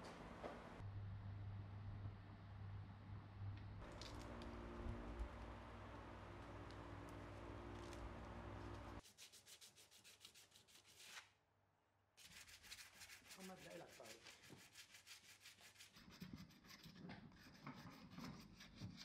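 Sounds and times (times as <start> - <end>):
steady low hum: 0.0 - 9.0
sandpaper scratching on glass: 12.2 - 19.0.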